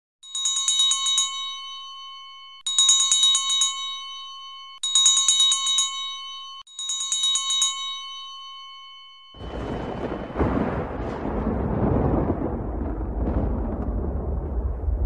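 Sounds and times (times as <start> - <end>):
small bell ringing rapidly: 0.2 - 9.6.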